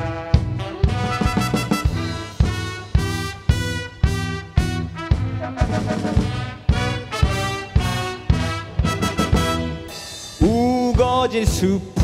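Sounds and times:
brass playing chords: 0.0 - 10.4
steady march beat: 0.0 - 11.7.

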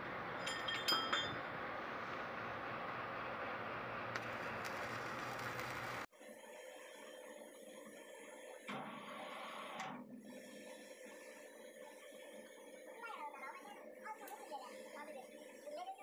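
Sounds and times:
workshop noise: 0.0 - 6.1
gas cutting torch hissing: 4.1 - 16.0.

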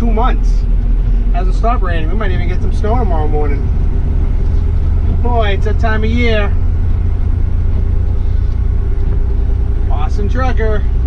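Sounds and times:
steady hum: 0.0 - 11.0
truck diesel engine drone: 0.0 - 11.0.

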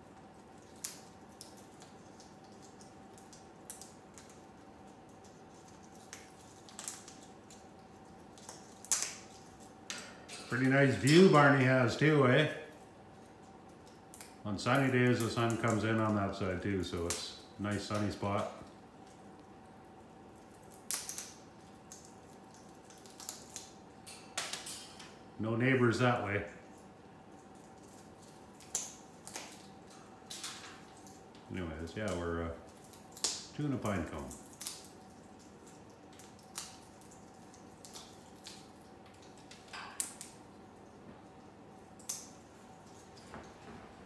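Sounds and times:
bird beak crunching pine cone: 0.0 - 9.8, 20.2 - 24.7, 26.7 - 43.2.

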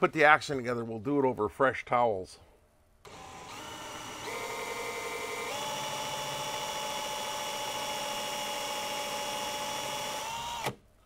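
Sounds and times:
cordless drill motor whine: 3.1 - 10.8.

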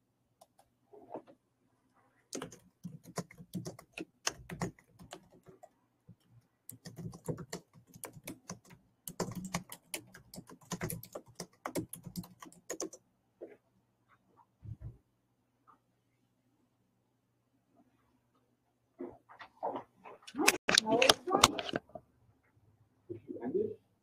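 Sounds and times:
computer keyboard typing: 2.4 - 13.0.

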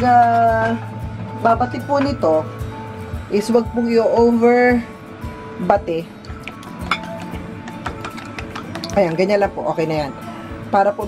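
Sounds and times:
soft guitar music: 0.0 - 11.0.

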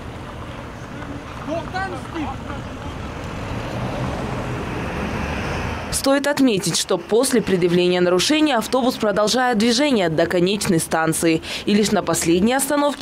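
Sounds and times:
bus engine rumble: 0.0 - 13.0.

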